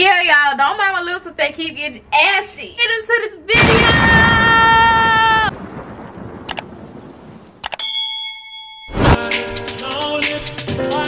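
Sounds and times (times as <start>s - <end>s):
notification bell ding: 7.6s - 9.2s
loud music: 9.0s - 11.0s.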